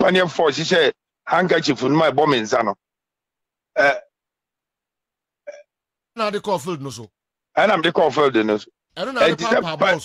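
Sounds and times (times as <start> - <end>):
person's hiccup-like vocal sound: 3.8 - 4.1, 5.5 - 5.7.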